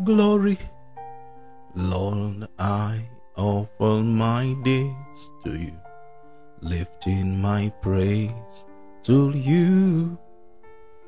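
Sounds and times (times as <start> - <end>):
man singing: 0.0 - 0.8, 1.8 - 5.9, 6.6 - 10.3.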